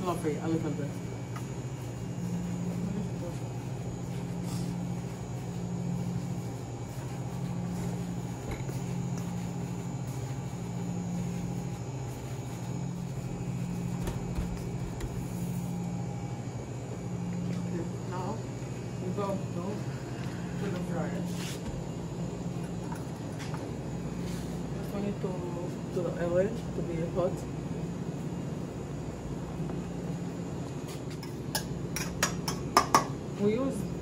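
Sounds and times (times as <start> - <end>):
kitchen machinery hum with throb: 0.0 - 34.0.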